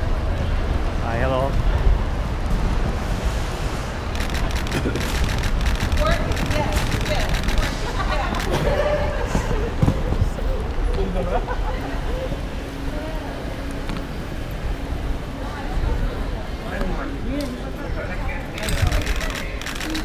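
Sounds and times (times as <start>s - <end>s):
voices of passers-by: 0.0s - 20.0s
quick run of clicks: 4.2s - 8.5s.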